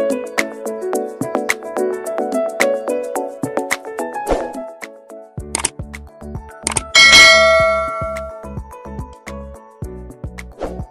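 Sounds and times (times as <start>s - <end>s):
background music with steady beat: 0.0s - 10.9s
bright bell ding: 7.0s - 8.5s.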